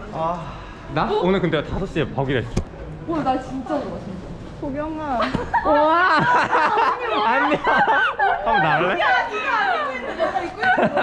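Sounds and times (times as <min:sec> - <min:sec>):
young people chattering: 0:00.0 - 0:11.0.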